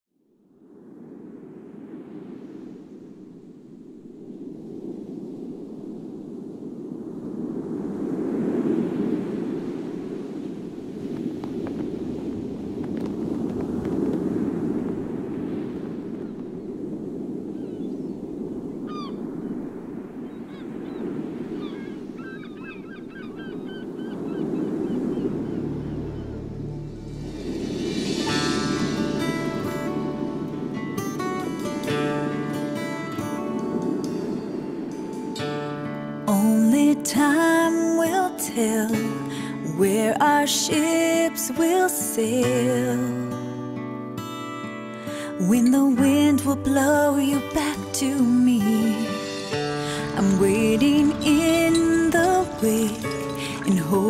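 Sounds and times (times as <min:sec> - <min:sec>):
rushing surf-like wash: 0:00.4 - 0:54.0
instrumental song intro: 0:25.3 - 0:36.3, 0:48.5 - 0:54.0
low bass note: 0:25.5 - 0:30.8.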